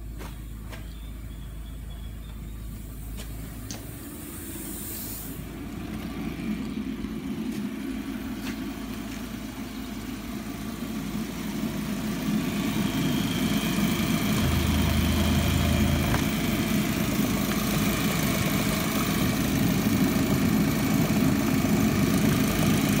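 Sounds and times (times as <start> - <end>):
car engine running: 5.4 - 23.0
faint high whine: 12.3 - 18.2.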